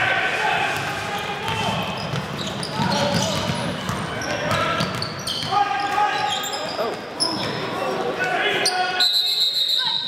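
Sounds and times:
sneakers squeaking: 0:00.8 - 0:08.0
referee's whistle: 0:08.9 - 0:10.0.

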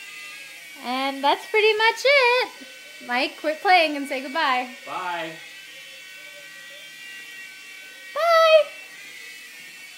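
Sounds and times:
toy helicopter motor whine: 0:00.0 - 0:09.9.

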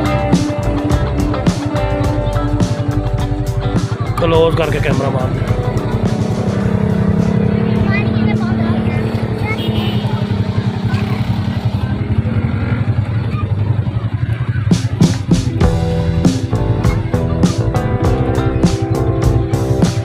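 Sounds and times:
background music: 0:00.0 - 0:10.5, 0:14.7 - 0:20.0
vehicle engine running: 0:00.0 - 0:20.0.

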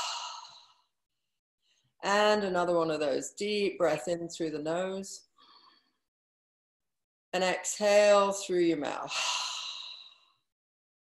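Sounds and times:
woman exhaling breathily: 0:00.0 - 0:00.8.

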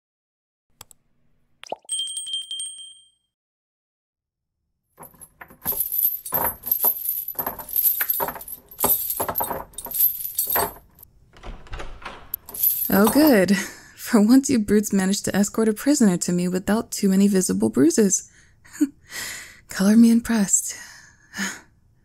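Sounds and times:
bright bell ding: 0:01.9 - 0:03.2
metal chains rattling: 0:05.0 - 0:11.0, 0:12.0 - 0:13.5.

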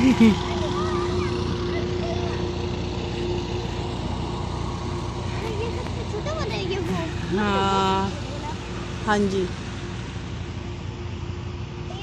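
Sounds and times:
road traffic: 0:00.0 - 0:12.0
vehicle engine hum: 0:00.0 - 0:12.0.

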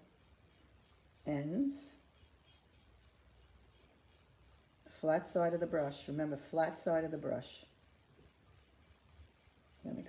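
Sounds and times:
paintbrush strokes on ceramic: 0:00.0 - 0:10.0
woman speaking: 0:01.2 - 0:02.0, 0:04.9 - 0:07.7.

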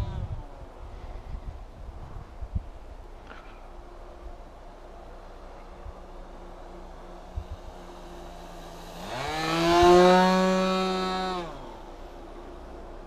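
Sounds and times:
propeller aircraft flying overhead: 0:02.8 - 0:13.0.

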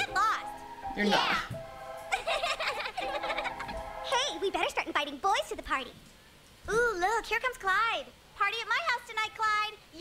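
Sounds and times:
high-pitched cartoon voices: 0:00.0 - 0:04.7
held music tones: 0:00.0 - 0:04.8.

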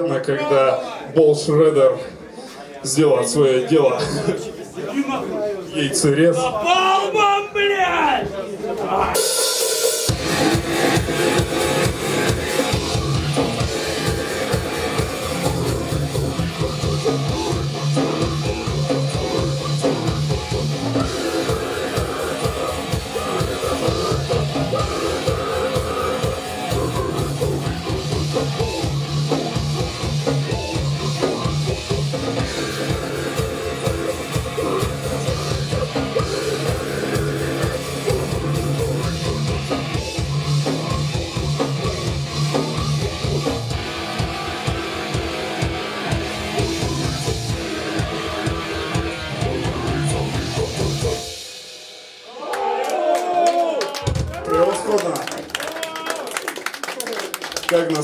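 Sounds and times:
grindcore band playing live: 0:09.0 - 0:52.3
fast dense drumming: 0:09.1 - 0:51.4.

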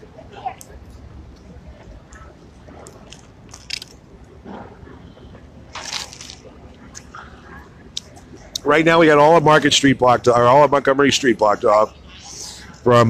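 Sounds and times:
distant voices: 0:00.0 - 0:13.0
clicks and crackles near microphone: 0:00.6 - 0:04.7.

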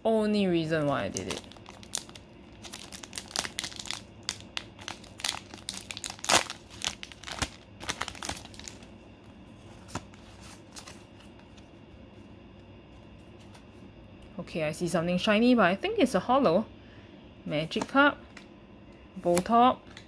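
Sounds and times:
plastic wrapper crinkling and tearing: 0:00.8 - 0:08.9.

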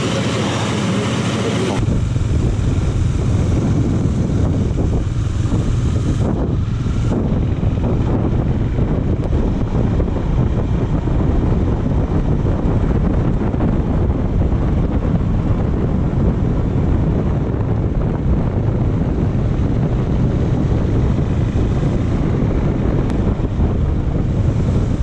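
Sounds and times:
wind rushing over microphone: 0:00.0 - 0:25.0.

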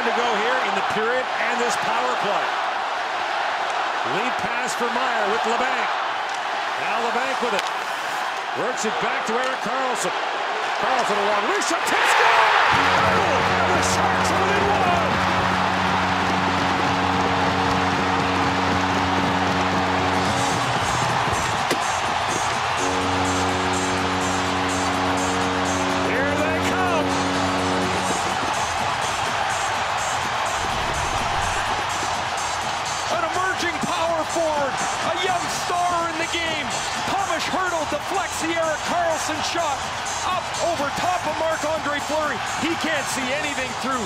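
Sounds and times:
crowd cheering: 0:00.0 - 0:44.0
crowd whoops and voices: 0:00.7 - 0:23.4, 0:26.5 - 0:36.8
goal horn blasts: 0:12.7 - 0:15.9, 0:22.7 - 0:28.4.

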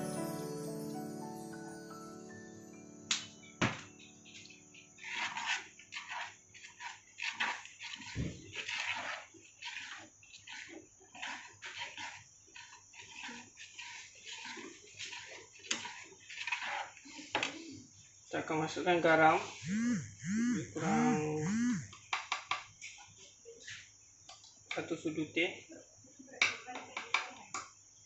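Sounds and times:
spoon stirring thick soup: 0:04.3 - 0:17.1.

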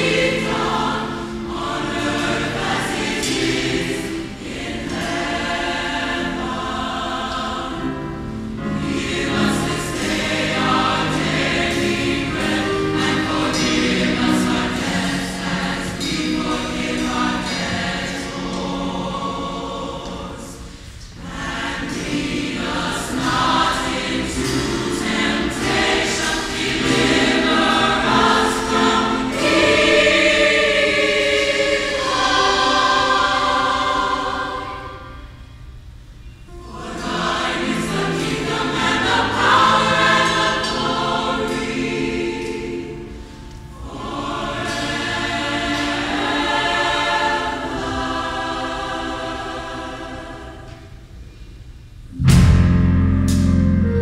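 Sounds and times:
choir singing in harmony: 0:00.0 - 0:52.7.

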